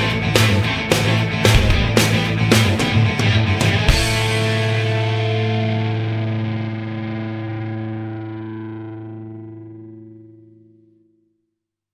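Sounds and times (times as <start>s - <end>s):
distorted electric guitar chord ringing: 0.0s - 10.8s.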